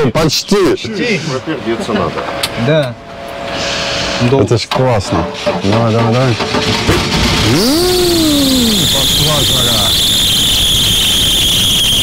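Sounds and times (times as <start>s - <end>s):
person shouting: 7.4s - 9.0s
high-pitched belt squeal: 7.4s - 12.0s.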